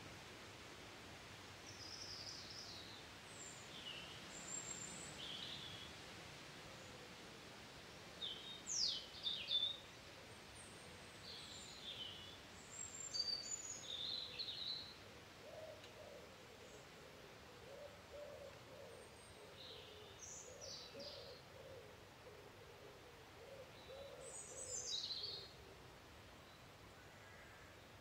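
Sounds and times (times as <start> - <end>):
faint outdoor hiss: 0.0 - 28.0
songbirds chirping and whistling: 8.2 - 9.8, 11.0 - 15.0, 15.6 - 22.6, 23.4 - 25.6.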